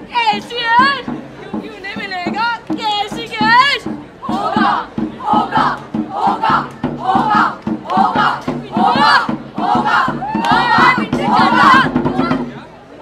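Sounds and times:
hand drum beats: 0.1s - 12.7s
group chanting in unison: 4.2s - 12.4s.

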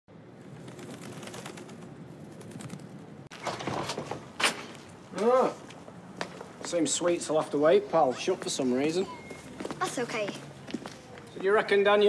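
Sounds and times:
outdoor background noise: 0.1s - 12.0s.

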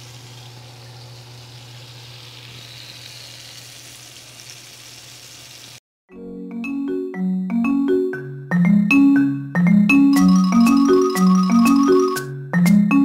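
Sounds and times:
oil sizzling in a skillet: 0.0s - 5.8s.

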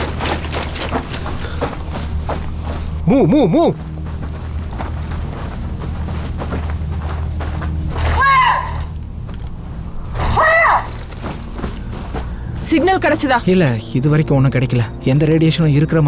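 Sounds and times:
low steady rumble: 0.0s - 15.2s
loud high-pitched cries: 8.1s - 9.0s, 10.2s - 11.0s.

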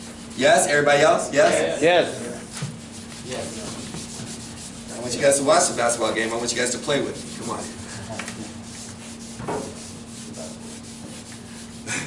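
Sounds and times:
marker scratching on paper: 2.4s - 11.9s.

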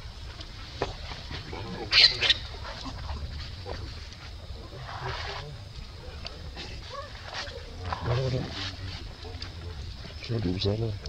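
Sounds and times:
baby monkey high-pitched squeals: 1.9s - 2.6s.

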